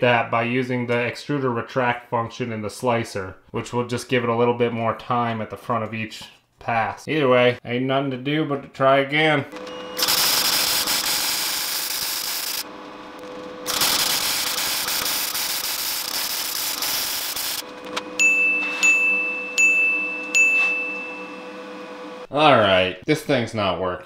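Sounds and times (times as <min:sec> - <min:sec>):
welding arc hissing: 0:10.0 - 0:12.7, 0:13.6 - 0:17.6
high ringing chime tones: 0:18.2 - 0:22.0.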